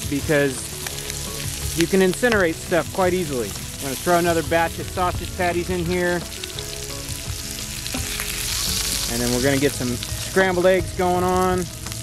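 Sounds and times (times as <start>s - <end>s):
sausage sizzling in skillet: 0.0s - 12.0s.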